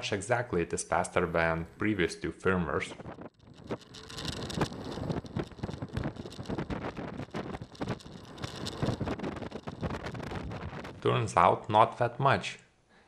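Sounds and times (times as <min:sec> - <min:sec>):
wind buffeting microphone: 0:02.7 - 0:11.7
scooter rattling over rough pavement: 0:02.9 - 0:11.7.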